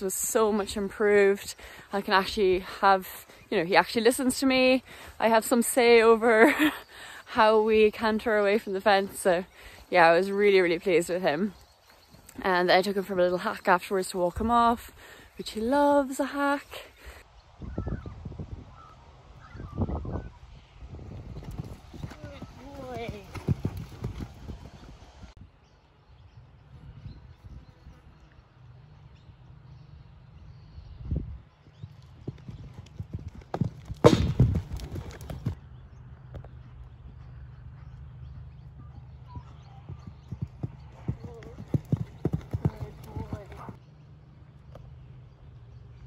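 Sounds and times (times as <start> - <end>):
horse hoofbeats on sand: 21.4 - 24.9, 32.0 - 35.6, 36.4 - 43.8
horse landing thud: 33.6 - 35.6.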